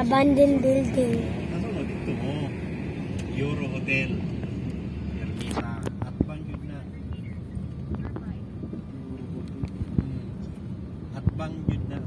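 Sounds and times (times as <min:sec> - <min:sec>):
road and engine noise in a car: 0:00.0 - 0:12.0.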